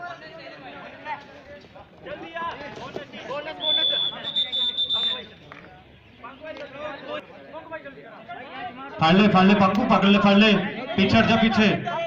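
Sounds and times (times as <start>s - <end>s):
long whistle blast: 3.6s - 5.2s.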